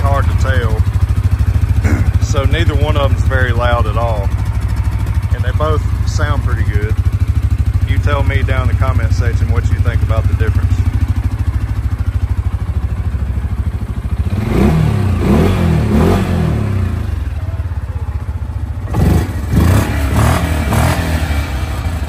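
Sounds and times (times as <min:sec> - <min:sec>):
atv engine revving: 0:00.0 - 0:22.0
atv engines idling: 0:00.0 - 0:22.0.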